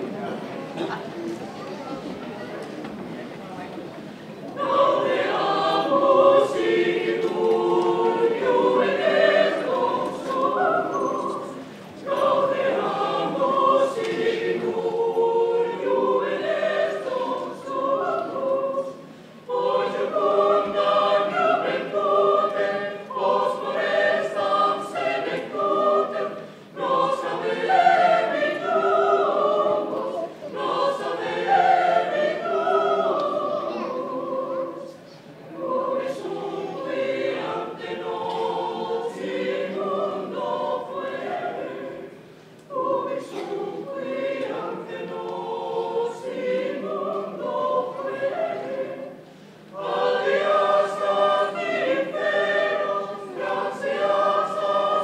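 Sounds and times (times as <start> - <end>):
mixed choir singing: 4.4 - 55.0.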